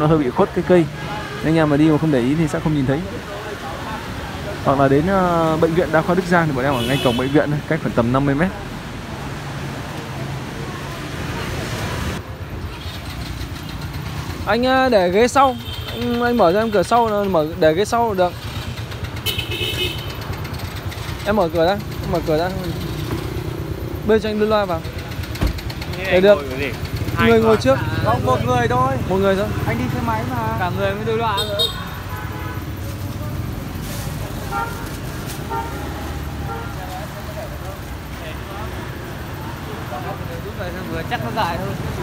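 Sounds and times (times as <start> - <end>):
street traffic rumble: 0.0 - 42.0
car engine idling: 16.1 - 31.2.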